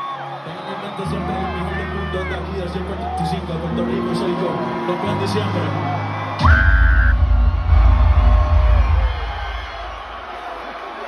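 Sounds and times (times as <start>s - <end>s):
crowd cheering and whooping: 0.0s - 11.0s
heavy bass from sound system: 6.4s - 10.3s.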